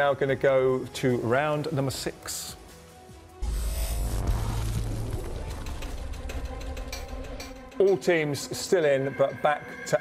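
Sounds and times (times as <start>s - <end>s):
deep bass hit with hiss: 3.4s - 6.4s.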